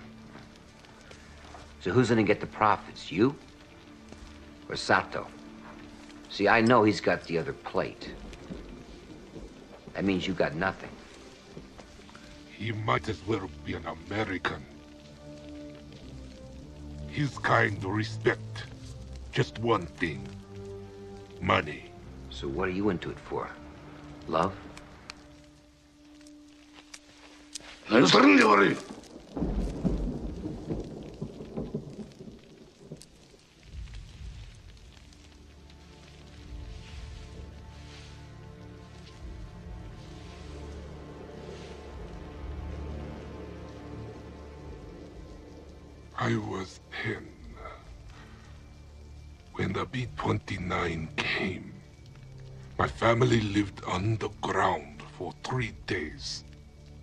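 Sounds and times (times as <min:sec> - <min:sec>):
deep rumbling: 0:00.0 - 0:55.1
faint even hiss: 0:00.0 - 0:57.0
faint ticks: 0:23.8 - 0:27.9
low rumble: 0:28.6 - 0:50.2.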